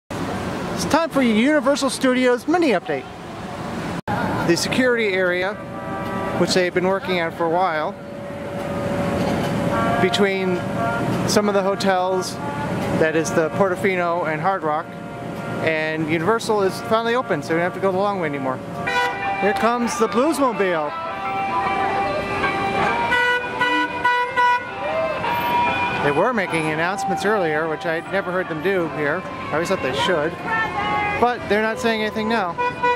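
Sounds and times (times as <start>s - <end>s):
crowd chatter: 4.1s - 8.0s, 16.3s - 32.9s
car horn short honks: 18.8s - 19.5s, 22.9s - 24.7s.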